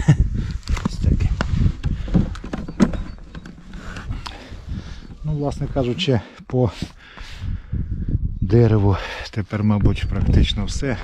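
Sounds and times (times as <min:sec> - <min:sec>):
camera handling knocks and rustling: 0:00.7 - 0:04.3.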